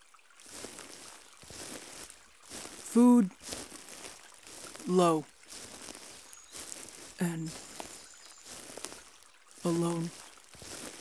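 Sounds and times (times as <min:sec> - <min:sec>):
crinkly rustling: 0:00.4 - 0:11.0
woman's wordless vocal sounds: 0:07.2 - 0:07.6, 0:09.6 - 0:10.1.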